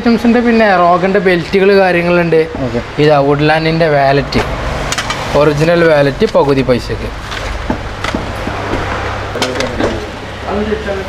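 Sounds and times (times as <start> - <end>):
man speaking: 0.0 - 4.6, 5.3 - 7.2, 9.4 - 11.0.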